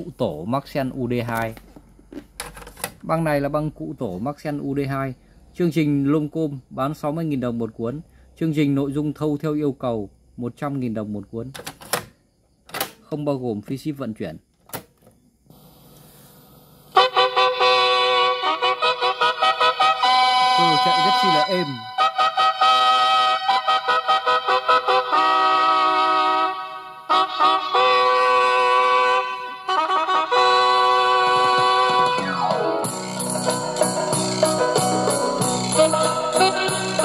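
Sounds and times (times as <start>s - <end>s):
tape hiss: 15.4s - 17.2s, 17.8s - 23.7s
music from boombox speakers: 17.8s - 22.0s, 30.2s - 37.0s.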